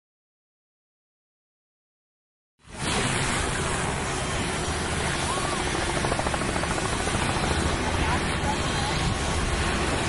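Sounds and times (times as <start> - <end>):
helicopter rotor and engine rumble: 2.6 - 10.0.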